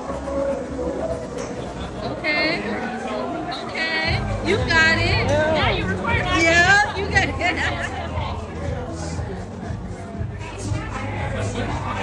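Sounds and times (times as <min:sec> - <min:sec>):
background music with bass: 0:00.0 - 0:12.0
indistinct voices chattering: 0:00.0 - 0:12.0.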